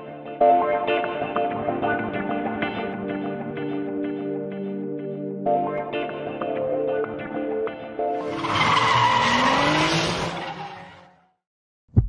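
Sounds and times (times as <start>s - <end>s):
background music: 0.0s - 9.8s
car tyre screech: 8.2s - 11.4s.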